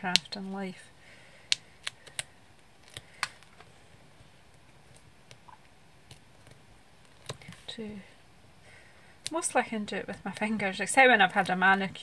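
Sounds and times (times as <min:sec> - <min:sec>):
sharp clicks of adhesive pads: 0:01.4 - 0:03.7, 0:09.2 - 0:09.5.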